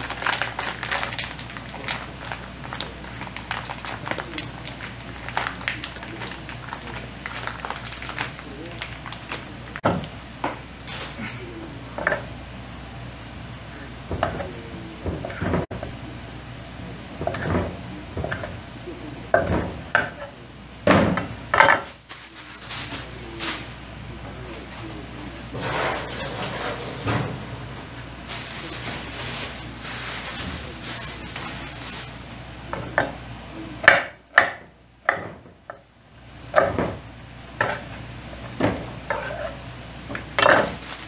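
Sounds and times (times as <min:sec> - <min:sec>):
rustling: 0:25.6 - 0:32.3, 0:40.6 - 0:41.0.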